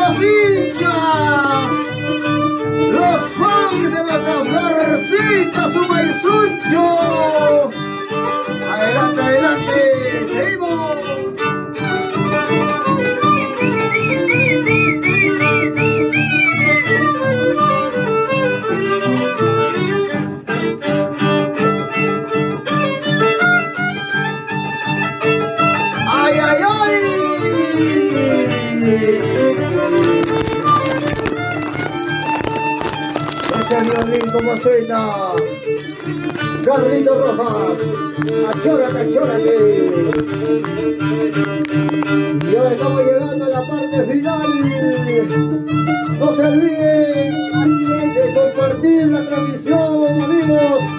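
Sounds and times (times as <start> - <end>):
sliding violin melody: 0.0 - 50.9.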